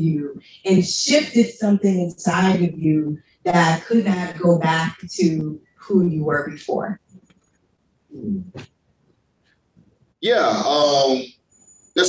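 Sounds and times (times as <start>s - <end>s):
person humming hmm: 8.2s - 8.6s, 10.2s - 11.2s.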